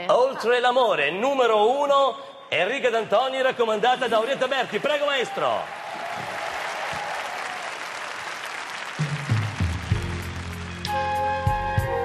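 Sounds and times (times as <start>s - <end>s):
studio audience applauding: 4.0s - 12.0s.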